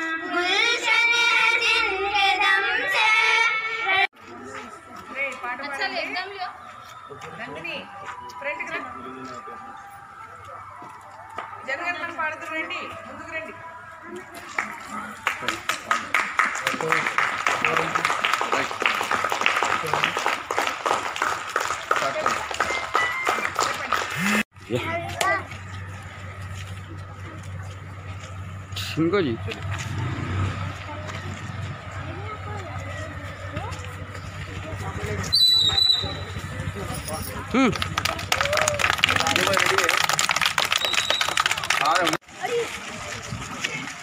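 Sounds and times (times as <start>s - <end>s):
crowd talking: 0.0s - 44.0s
people clapping: 14.2s - 24.5s, 36.8s - 44.0s.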